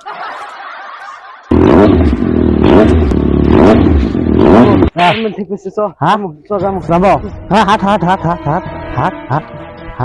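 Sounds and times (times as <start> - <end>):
motorcycle engine revving: 1.5 - 5.0.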